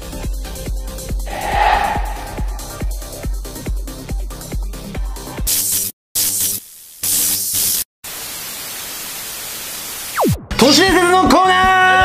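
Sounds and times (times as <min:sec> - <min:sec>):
static hiss: 0:06.2 - 0:10.1.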